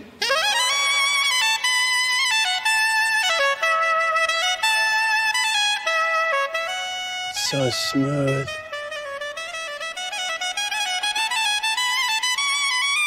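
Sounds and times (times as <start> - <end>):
soprano saxophone melody: 1.6 - 12.0.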